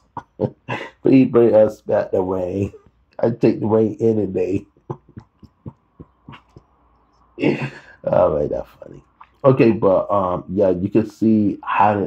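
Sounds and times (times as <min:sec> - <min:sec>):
man chuckling softly: 0:00.0 - 0:01.5, 0:04.4 - 0:06.8, 0:07.4 - 0:08.3.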